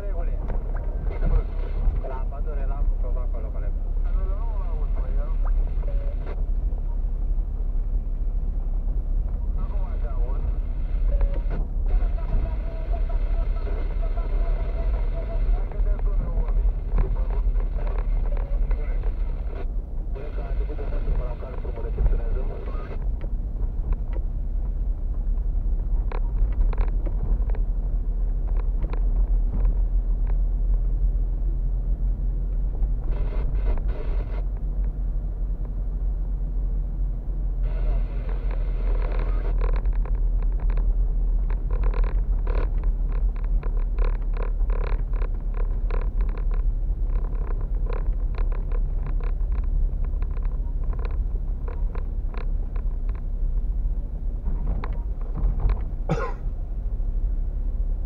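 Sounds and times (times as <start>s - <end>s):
car engine and tyres rumbling: 0.0s - 58.0s
road surface knocks and clatter: 23.0s - 31.3s, 38.2s - 58.0s.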